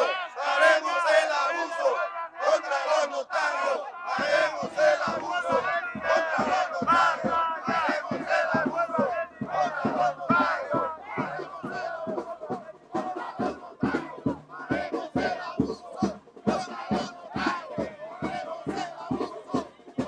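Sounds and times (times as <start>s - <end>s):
crowd shouting and chanting: 0.0s - 20.0s.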